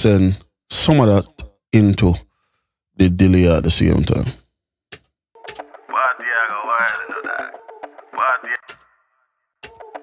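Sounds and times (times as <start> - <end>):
telephone-effect voice with delay: 5.9 - 8.8.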